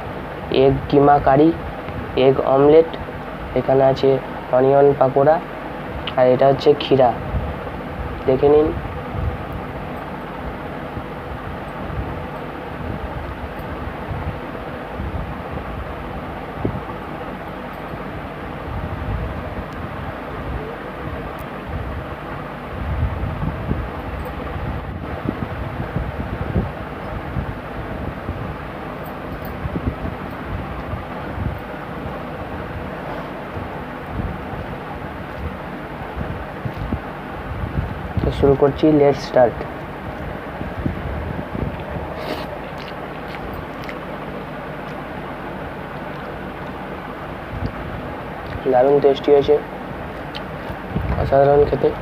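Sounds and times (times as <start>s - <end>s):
air buffeting microphone: 0.0s - 52.0s.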